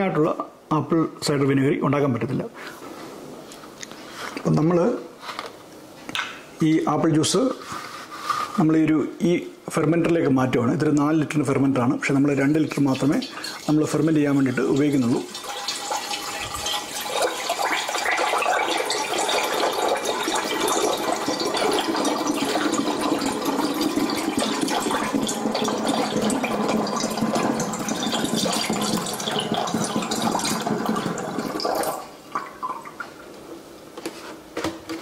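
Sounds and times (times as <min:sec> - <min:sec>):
juice pouring into a jug: 0:12.6 - 0:33.1.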